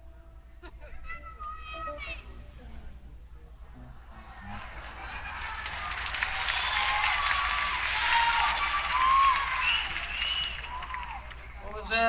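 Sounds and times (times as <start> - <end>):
audience cheering: 4.1 - 11.9
audience clapping: 4.5 - 12.0
audience whistling: 5.4 - 11.6.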